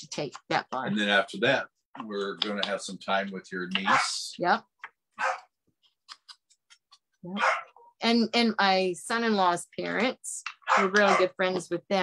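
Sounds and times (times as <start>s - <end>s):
dog bark: 3.8s - 4.2s, 5.2s - 5.5s, 7.4s - 7.9s, 10.6s - 11.4s.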